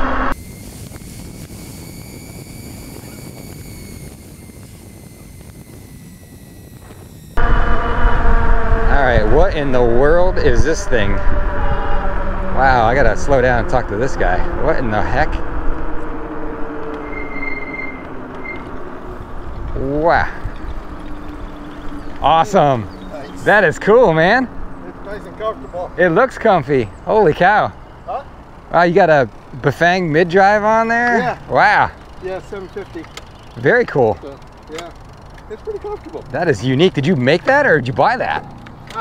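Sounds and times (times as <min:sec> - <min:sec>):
wind noise: 0:00.0 - 0:25.2
electric motor whining: 0:00.0 - 0:25.5, 0:28.6 - 0:39.0
brakes squealing: 0:00.0 - 0:39.0
tyre noise: 0:38.2 - 0:39.0.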